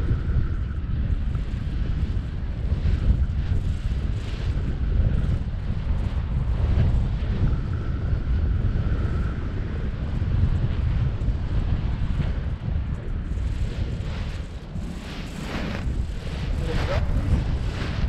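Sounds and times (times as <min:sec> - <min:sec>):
wind rushing over microphone: 0:00.0 - 0:18.0.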